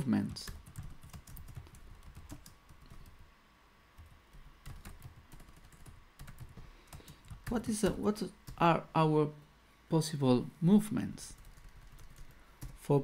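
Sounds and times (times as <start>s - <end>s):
computer keyboard typing: 0.2s - 3.3s, 4.0s - 8.7s, 11.3s - 12.8s.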